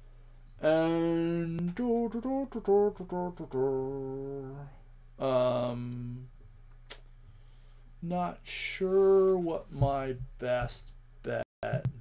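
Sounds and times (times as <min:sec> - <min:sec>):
man humming hesitation: 0:00.6 - 0:06.3.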